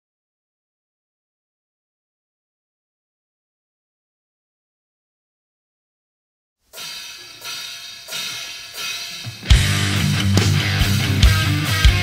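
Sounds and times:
heavy metal band with drums: 6.8 - 12.0
repeated guitar chords: 6.8 - 12.0.

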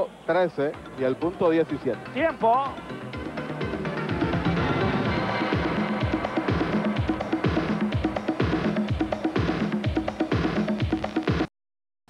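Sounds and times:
electronic music with thumping beat: 0.7 - 11.5.

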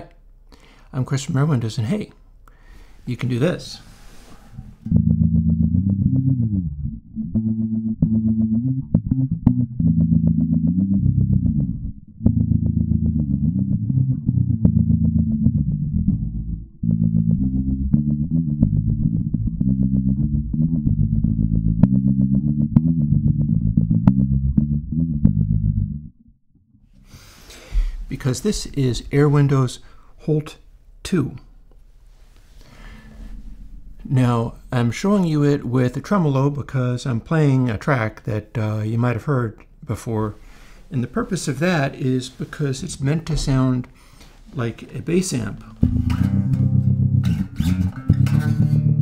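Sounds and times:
filtered electric bass melody: 4.7 - 30.2, 30.8 - 36.8, 41.0 - 49.0.

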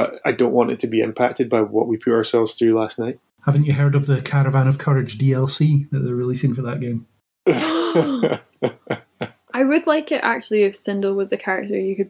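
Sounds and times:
breathy vocal exclamation: 7.5 - 9.3
short vocal bursts: 7.5 - 9.3.

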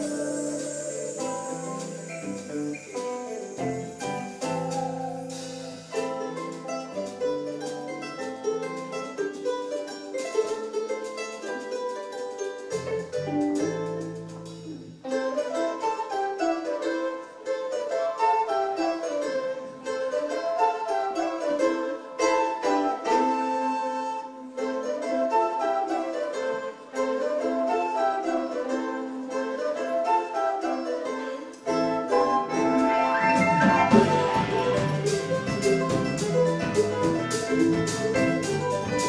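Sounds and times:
charango picking quick runs: 0.0 - 39.0
bass and drums: 33.2 - 39.0.

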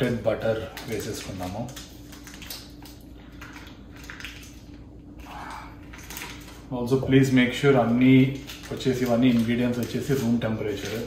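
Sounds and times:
paper wrapper crinkling: 0.0 - 4.8, 5.8 - 11.0
low steady hum: 0.0 - 11.0.

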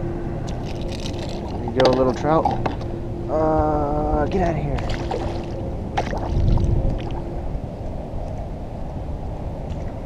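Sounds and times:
wind rumble on microphone: 0.0 - 10.0
fish splashing into water: 4.8 - 6.6.

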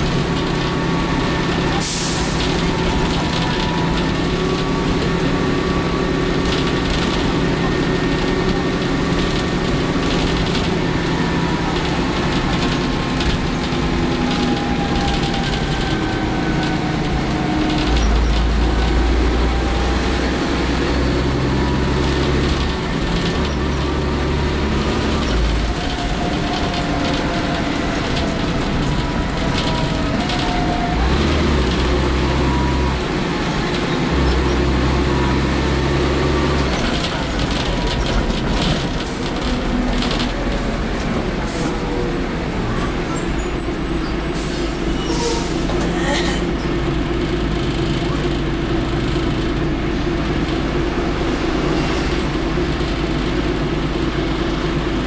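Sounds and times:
bus diesel engine running: 0.0 - 55.0.

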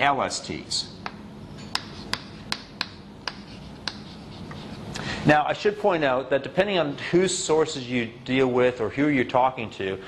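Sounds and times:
chalk tapping on chalkboard: 1.0 - 4.8.

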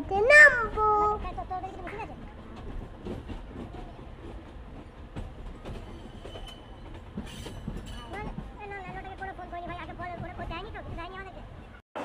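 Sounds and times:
voices: 0.0 - 2.7, 7.9 - 11.8
wheels clicking on track: 0.0 - 11.6
train rumble inside carriage: 0.0 - 11.8.

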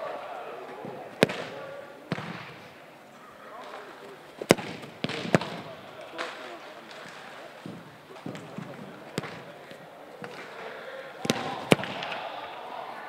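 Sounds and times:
footballs kicked and landing on turf: 0.7 - 2.7, 3.7 - 10.6, 11.2 - 12.2.

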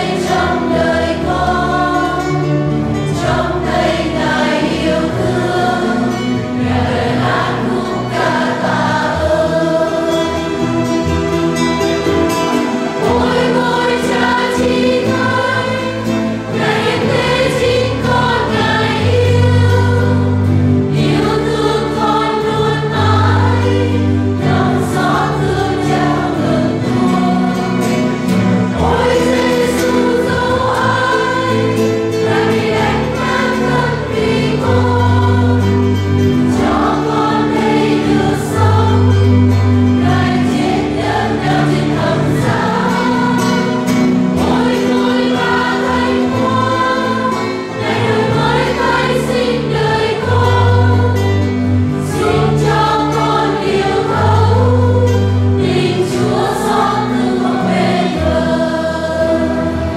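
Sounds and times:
choir singing a hymn: 0.0 - 59.9
instrumental accompaniment: 0.0 - 59.9.

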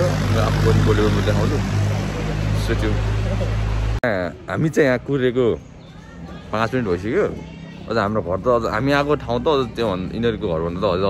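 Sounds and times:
man talking: 0.0 - 5.6, 6.5 - 11.0.

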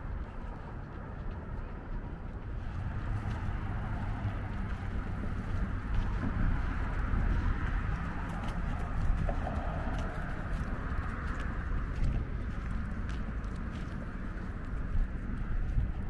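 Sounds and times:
city traffic rumble: 0.0 - 16.0.

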